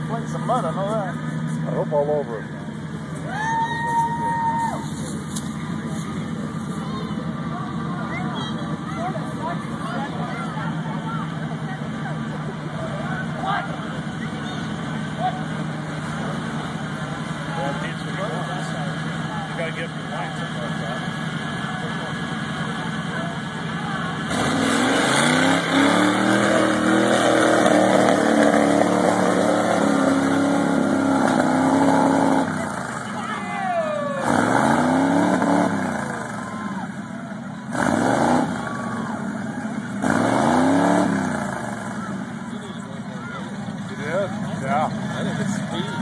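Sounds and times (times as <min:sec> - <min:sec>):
engine revving hard: 0:24.2 - 0:33.0, 0:34.1 - 0:36.5, 0:37.7 - 0:42.3.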